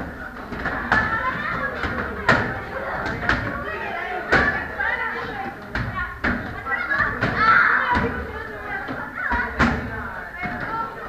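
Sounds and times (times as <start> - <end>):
children's voices and shouts: 0.0 - 11.0.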